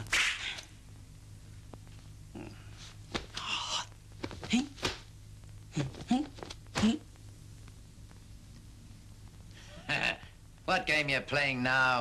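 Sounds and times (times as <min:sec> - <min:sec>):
faint low soundtrack hum: 0:00.0 - 0:12.0.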